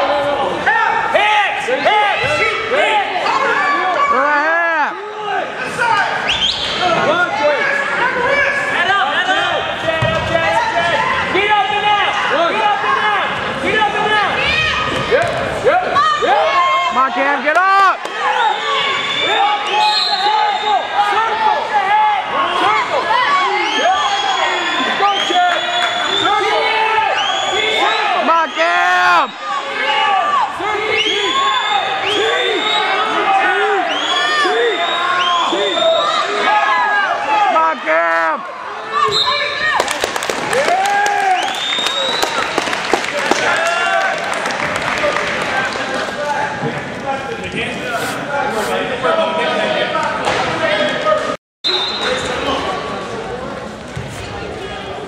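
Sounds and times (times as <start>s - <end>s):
crowd shouting and cheering: 0.0s - 55.0s
applause: 39.8s - 46.3s.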